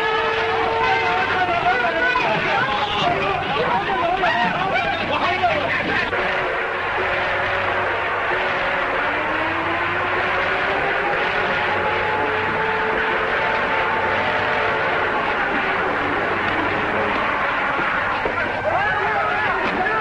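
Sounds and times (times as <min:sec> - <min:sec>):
engine roar: 0:00.0 - 0:20.0
faint tones drifting in pitch: 0:00.0 - 0:20.0.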